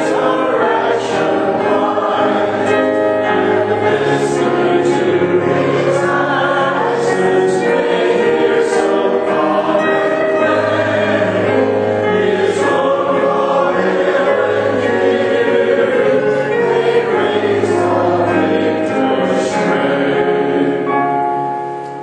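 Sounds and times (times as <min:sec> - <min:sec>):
congregation singing a hymn: 0:00.0 - 0:22.0
piano accompaniment: 0:00.0 - 0:22.0.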